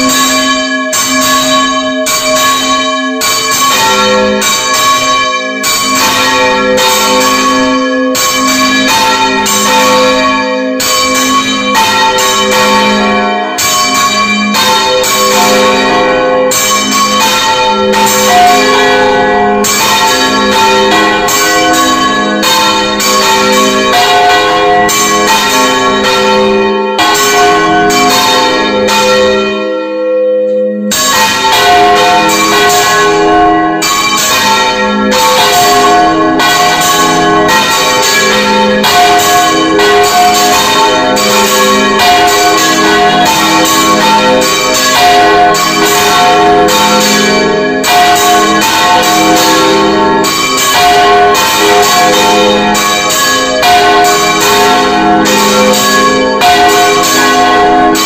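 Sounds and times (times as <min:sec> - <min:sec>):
church bells ringing: 0:00.0 - 0:58.0.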